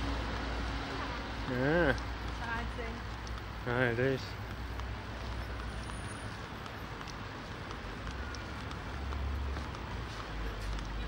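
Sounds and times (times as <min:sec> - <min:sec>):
faint light ticks: 0:01.9 - 0:03.6, 0:04.3 - 0:11.0.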